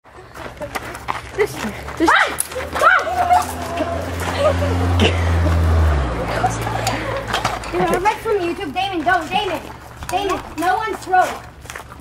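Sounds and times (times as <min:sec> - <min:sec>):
children laughing and calling out: 0:00.1 - 0:11.4.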